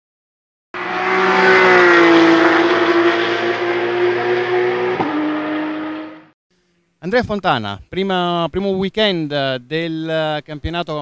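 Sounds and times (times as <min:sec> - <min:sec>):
race car engine revving: 0:00.8 - 0:06.3.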